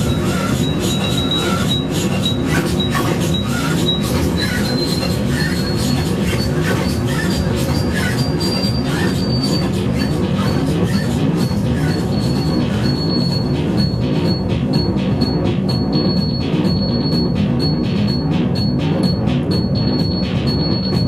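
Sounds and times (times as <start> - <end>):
low rumbling drone: 0.0 - 21.0.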